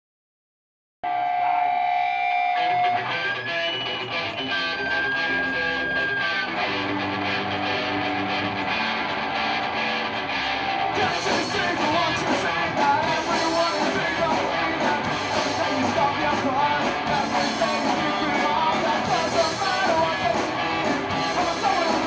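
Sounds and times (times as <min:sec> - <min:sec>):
electric guitars ringing: 0:01.1 - 0:22.0
drums with cymbal beat: 0:10.4 - 0:22.0.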